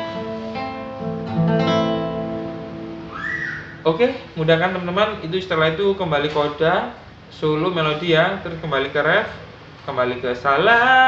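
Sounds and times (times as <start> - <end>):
acoustic guitar chords ringing: 0.0 - 4.4.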